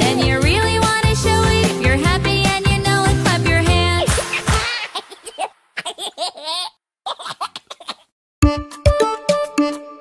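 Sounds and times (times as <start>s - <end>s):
cartoon children giggling: 4.1s - 8.1s.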